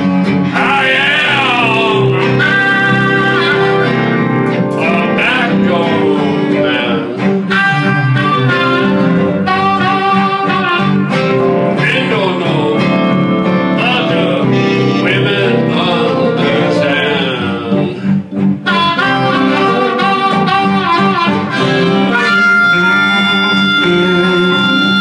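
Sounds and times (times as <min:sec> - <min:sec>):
blues band playing live: 0:00.0 - 0:25.0
blues harmonica: 0:00.0 - 0:25.0.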